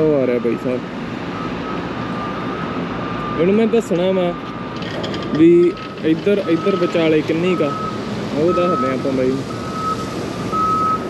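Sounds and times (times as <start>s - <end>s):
reversing alarm beeps: 0.2s - 4.9s, 5.6s - 11.0s.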